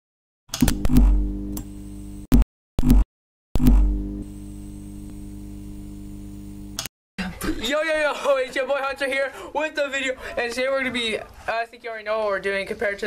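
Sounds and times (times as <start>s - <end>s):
sharp electrical clicks: 0.5s - 3.0s, 6.7s - 6.9s
neon sign buzzing hum: 0.6s - 3.0s, 3.6s - 6.8s.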